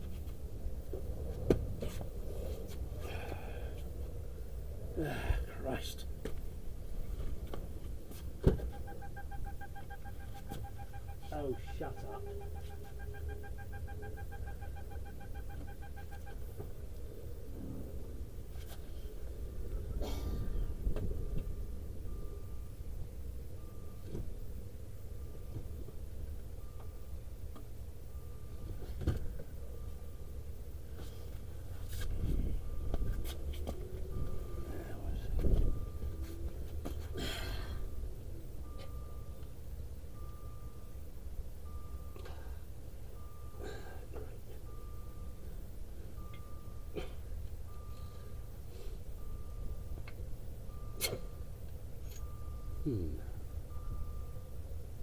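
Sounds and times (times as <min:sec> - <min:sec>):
dashboard warning tone: 0:08.0 - 0:18.6, 0:19.2 - 0:55.0
short warning beeps: 0:08.6 - 0:16.6, 0:21.4 - 0:24.2, 0:28.1 - 0:28.8, 0:34.1 - 0:54.8.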